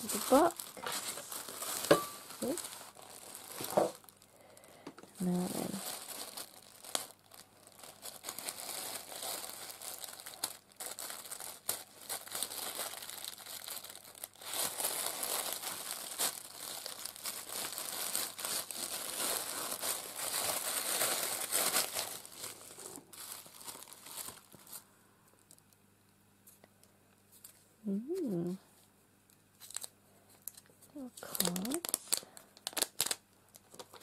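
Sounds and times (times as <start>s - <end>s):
tissue paper crinkling: 0.0s - 4.3s, 5.2s - 25.5s, 29.6s - 34.0s.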